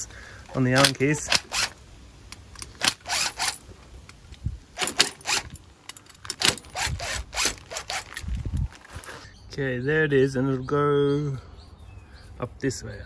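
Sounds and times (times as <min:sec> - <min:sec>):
cordless driver whirring: 0:00.8 - 0:01.8, 0:02.6 - 0:03.6, 0:04.8 - 0:05.6, 0:06.3 - 0:08.6.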